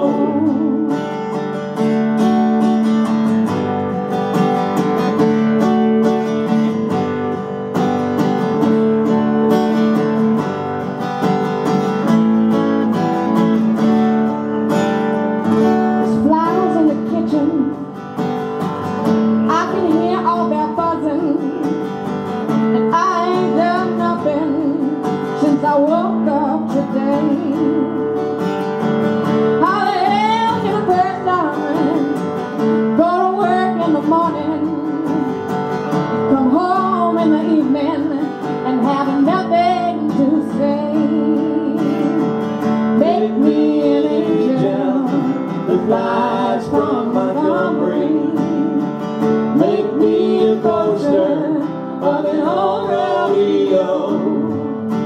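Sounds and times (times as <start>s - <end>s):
person singing: 0.0s - 1.2s, 22.7s - 28.2s, 43.0s - 54.8s
acoustic guitar strumming: 0.0s - 55.0s.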